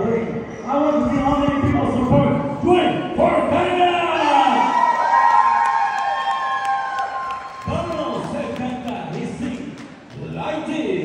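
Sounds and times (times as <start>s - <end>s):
audience cheering: 4.2s - 9.3s
long held whoop: 4.5s - 7.7s.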